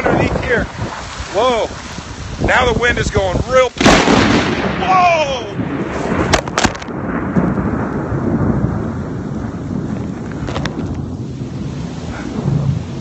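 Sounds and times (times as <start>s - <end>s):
heavy rain: 0.0s - 13.0s
thunder rumbling: 0.0s - 13.0s.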